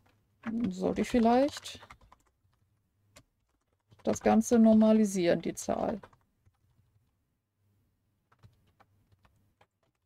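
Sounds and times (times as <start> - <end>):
computer keyboard keystrokes: 0.0 - 6.8, 8.3 - 10.0.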